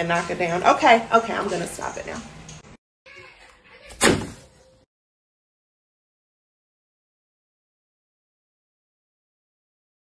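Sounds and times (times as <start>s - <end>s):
plastic bottle dropped into wastebasket: 3.9s - 4.5s.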